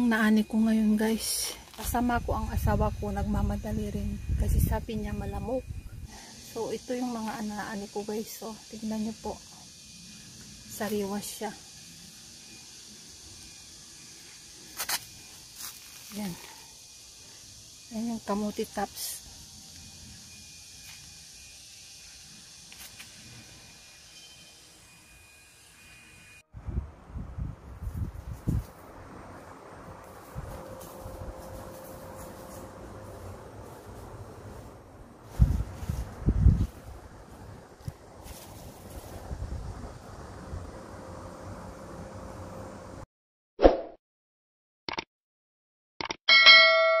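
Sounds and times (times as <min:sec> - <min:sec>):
thin high drone: 0:00.0 - 0:26.8, 0:27.8 - 0:43.0
short clicks: 0:44.9 - 0:45.1, 0:46.0 - 0:46.2
notification bell ding: 0:46.3 - 0:47.0.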